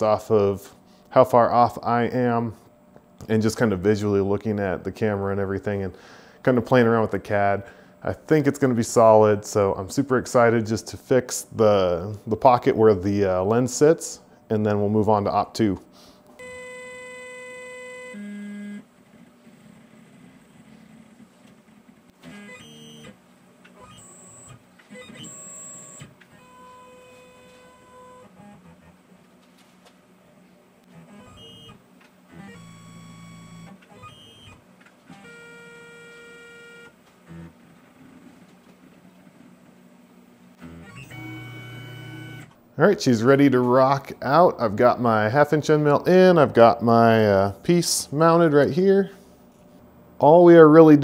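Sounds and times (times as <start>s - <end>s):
stepper motors whining: 40.6s - 42.6s.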